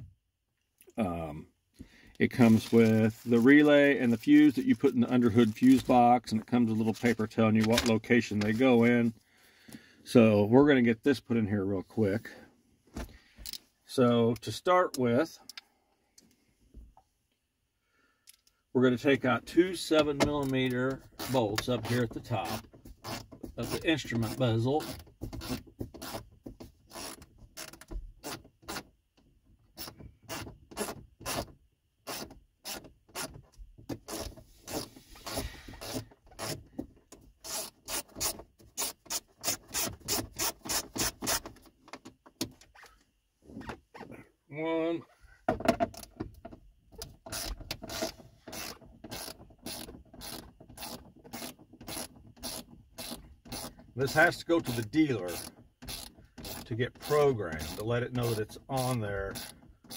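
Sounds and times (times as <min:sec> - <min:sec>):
ratchet wrench clicking: 0:47.3 - 0:53.7, 0:55.3 - 0:56.6, 0:59.3 - 0:59.9.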